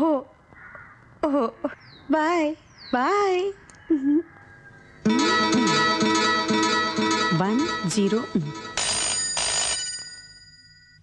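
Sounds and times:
telephone bell ringing: 5.1 - 11.0.

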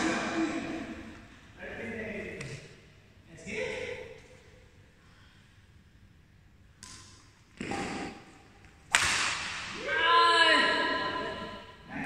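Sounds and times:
court noise: 6.8 - 11.9
badminton racket striking shuttlecock: 8.9 - 9.7.

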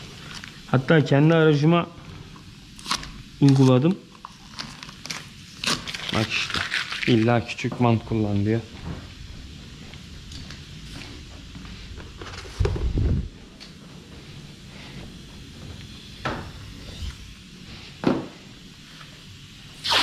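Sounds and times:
low steady hum: 0.0 - 19.8.

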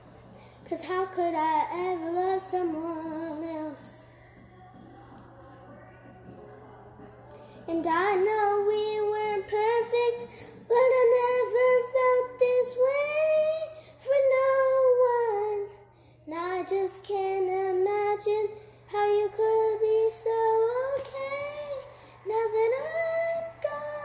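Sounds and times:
girl singing a slow ballad: 0.0 - 24.0.

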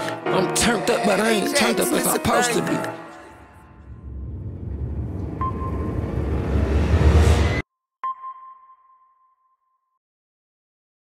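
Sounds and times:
sonar-style ping: 7.4 - 10.0.

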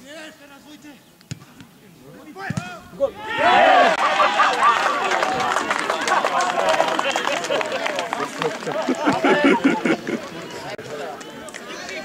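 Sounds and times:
football being kicked: 1.3 - 1.7, 2.4 - 2.8.

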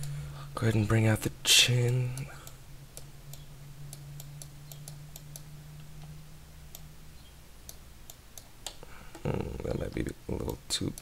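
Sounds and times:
low steady hum: 0.0 - 11.0
computer mouse clicking: 1.8 - 6.1, 6.7 - 11.0.

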